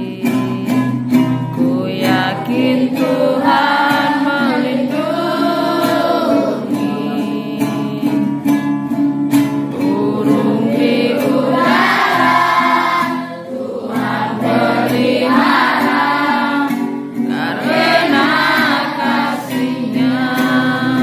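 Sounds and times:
instrumental backing: 0:00.0 - 0:21.0
children singing: 0:01.8 - 0:08.3, 0:09.7 - 0:21.0.

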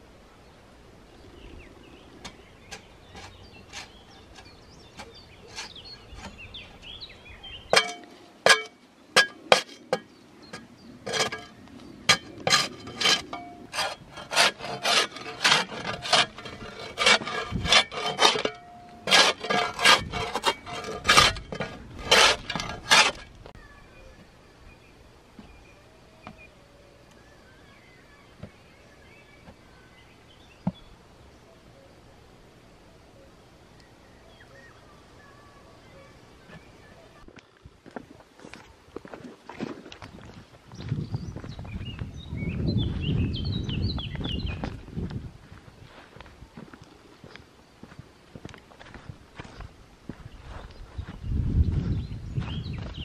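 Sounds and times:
ringing metal tone: 0:11.1 - 0:13.8, 0:17.7 - 0:21.4.

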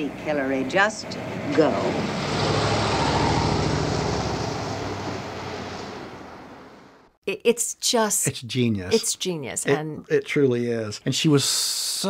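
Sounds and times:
car engine pulling away: 0:00.9 - 0:07.1.

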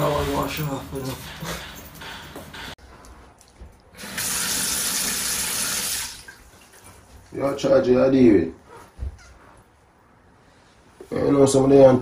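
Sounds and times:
faucet water running into sink: 0:04.0 - 0:06.7.

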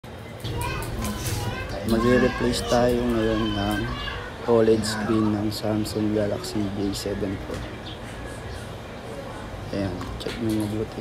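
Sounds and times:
children chattering: 0:00.2 - 0:11.0.

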